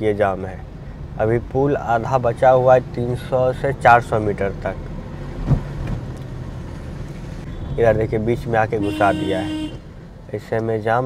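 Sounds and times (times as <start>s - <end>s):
car engine and road hum: 0.0s - 11.0s
thump: 5.4s - 6.1s.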